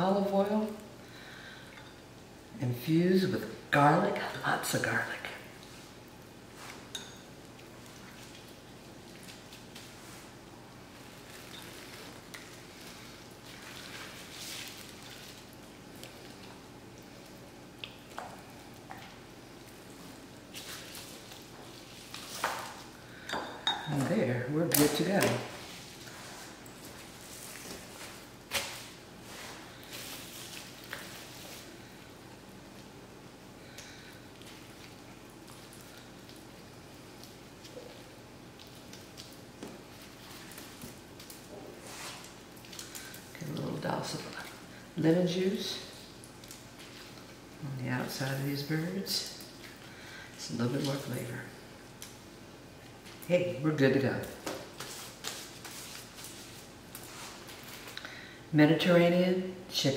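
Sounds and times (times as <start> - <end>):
chicken being basted: 5.6 - 23.3.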